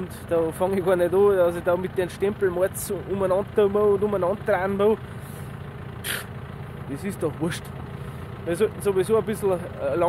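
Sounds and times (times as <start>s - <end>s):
tractor engine idling: 0.0s - 10.0s.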